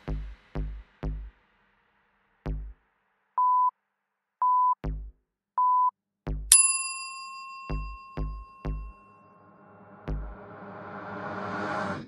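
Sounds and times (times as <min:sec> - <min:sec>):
deep thumps of backing music: 0:00.0 - 0:01.4, 0:02.5 - 0:02.8, 0:04.8 - 0:05.1, 0:06.3 - 0:06.5, 0:10.0 - 0:10.4
ringing bell-like ding: 0:06.5 - 0:09.6.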